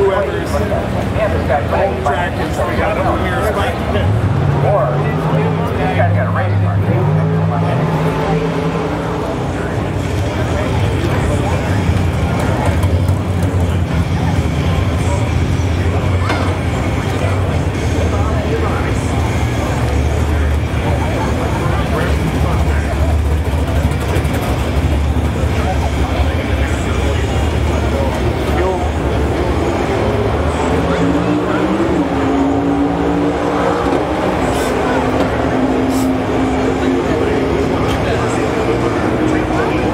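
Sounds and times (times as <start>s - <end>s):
crowd chatter: 0.0s - 39.9s
engine droning: 0.0s - 39.9s.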